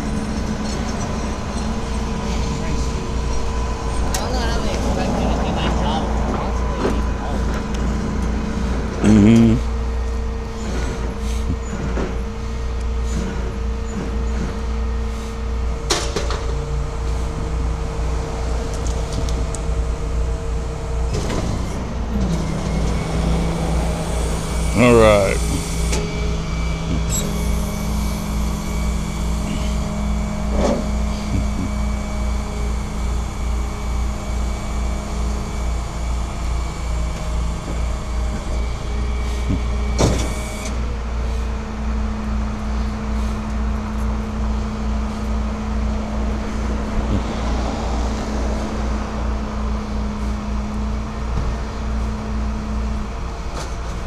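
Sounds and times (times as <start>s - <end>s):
vehicle engine idling: 0.0s - 54.0s
wavering whine sweeping upward: 1.0s - 7.8s.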